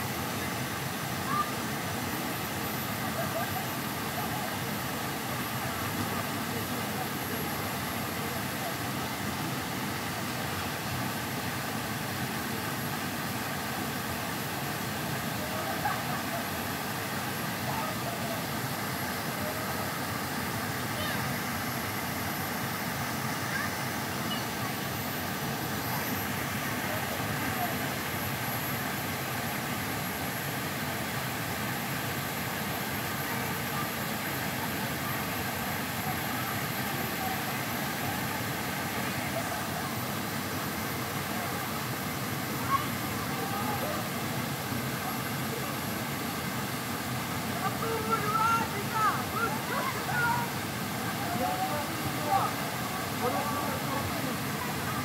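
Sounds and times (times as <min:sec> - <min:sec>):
faint voices of people bathing: 0:00.2 - 0:12.4, 0:13.0 - 0:55.0
waterfall pouring into pool: 0:00.2 - 0:55.0.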